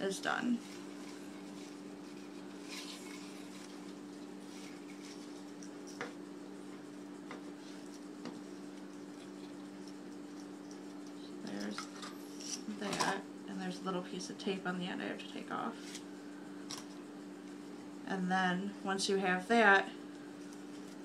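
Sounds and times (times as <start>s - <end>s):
fabric ribbon rustling: 0.5s - 6.1s.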